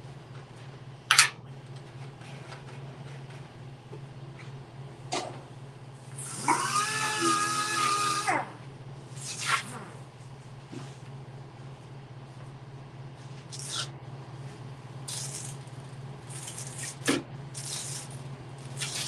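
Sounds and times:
steady low hum: 0.0 - 6.6, 8.3 - 19.0.

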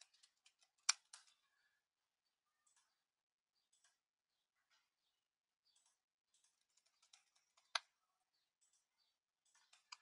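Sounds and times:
computer keyboard typing: 0.0 - 1.4, 5.8 - 7.9.

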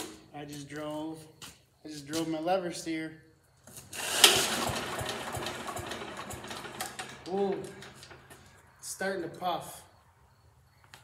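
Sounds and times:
small engine running: 3.9 - 8.6.

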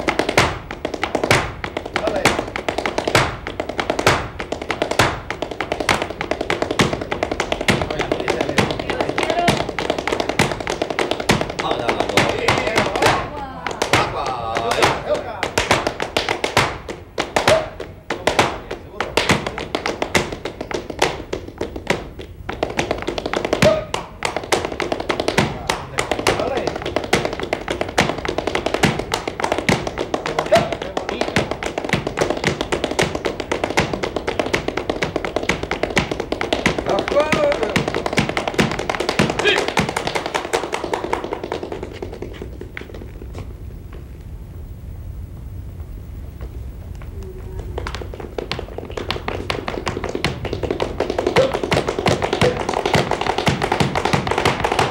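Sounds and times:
heel stamps on floor: 0.0 - 13.2, 13.8 - 44.0, 47.6 - 54.9
hands clapping fast rhythm: 0.0 - 43.3, 47.6 - 54.9.

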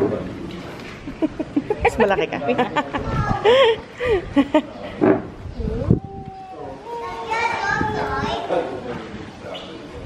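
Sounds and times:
children and adults talking: 0.0 - 10.0.

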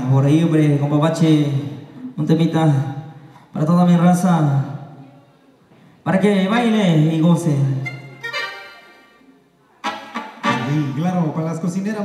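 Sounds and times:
accordion-like chord: 7.8 - 11.3
man's voice on a pa: 10.4 - 12.0.

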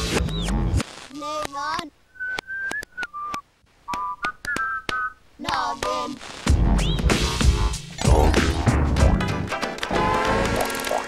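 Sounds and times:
sharp clicks: 0.2 - 6.0
sliding whistle tones: 2.1 - 5.2
short whistled notes: 2.2 - 5.2.

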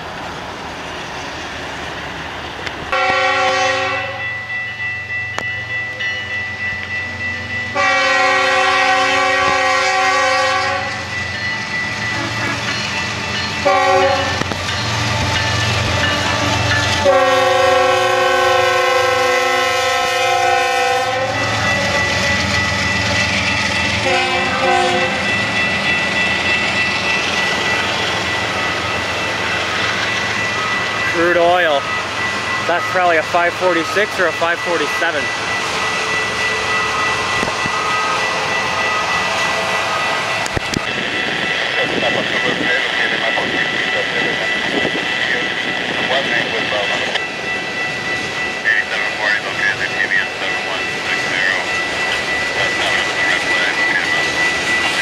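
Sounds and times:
locomotive air horn blasts: 2.9 - 4.2, 7.8 - 11.0, 13.6 - 14.4, 17.0 - 21.6, 24.0 - 25.3
train wheels clicking on rails: 8.3 - 55.0.

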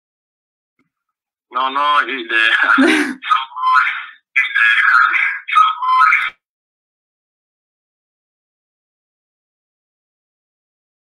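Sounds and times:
garbled tinny video call audio: 0.8 - 6.5.

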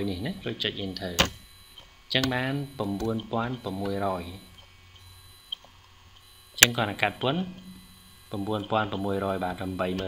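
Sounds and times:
low steady hum: 0.0 - 10.0
person speaking: 2.1 - 4.5.

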